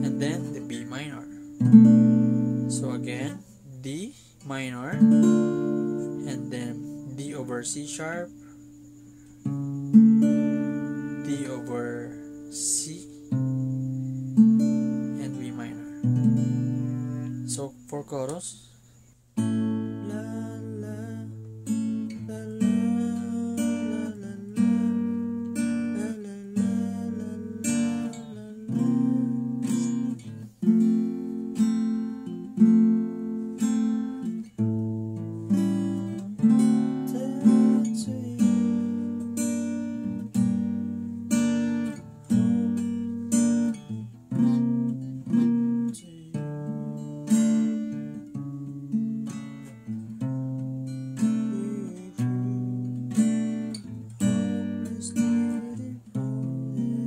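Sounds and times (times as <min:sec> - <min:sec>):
acoustic guitar strumming chords: 0:00.0 - 0:57.0.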